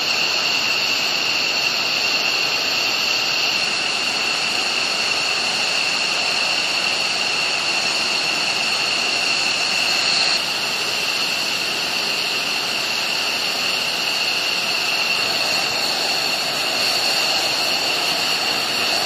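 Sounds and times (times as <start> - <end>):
jet engines running: 0.0 - 19.0.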